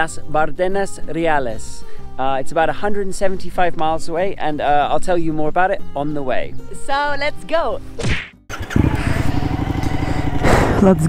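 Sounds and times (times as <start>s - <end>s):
motorcycle engine running: 8.5s - 11.0s.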